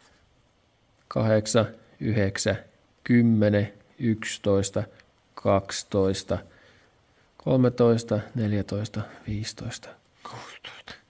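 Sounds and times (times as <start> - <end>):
man whispering counting: 7.3 - 11.0.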